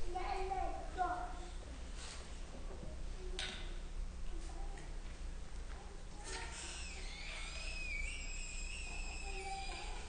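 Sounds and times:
high whistling tone: 6.7 - 10.0.

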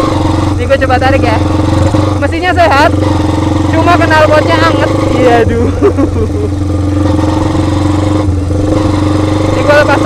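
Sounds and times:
motorcycle engine running: 0.0 - 10.0
person speaking: 3.7 - 6.4.

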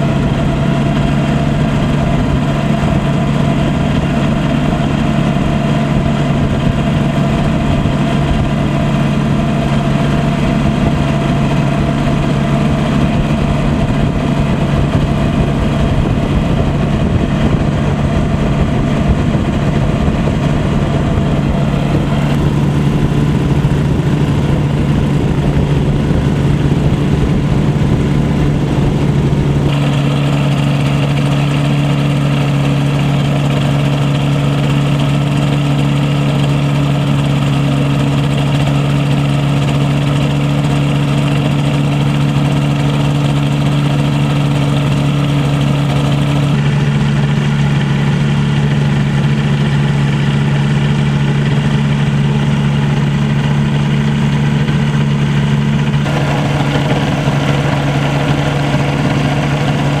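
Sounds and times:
two-stroke engine idling: 0.0 - 60.0.

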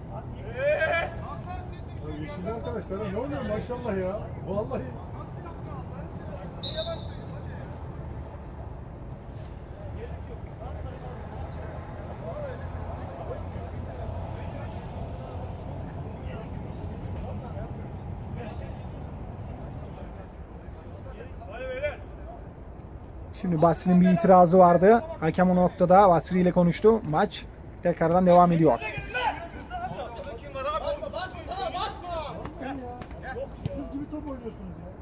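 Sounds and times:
distant players shouting: 0.0 - 8.5, 9.4 - 22.6, 28.1 - 34.8
referee's whistle blast: 6.6 - 7.4.

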